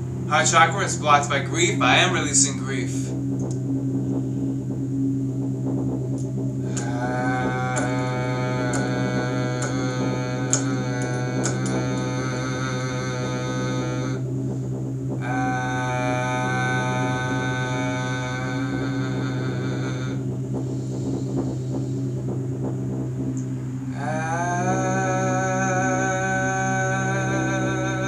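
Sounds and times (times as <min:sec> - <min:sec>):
steady low hum: 0:00.0 - 0:28.0
man chanting ah tone: 0:00.3 - 0:03.2, 0:06.7 - 0:14.2, 0:15.2 - 0:20.2, 0:23.9 - 0:28.0.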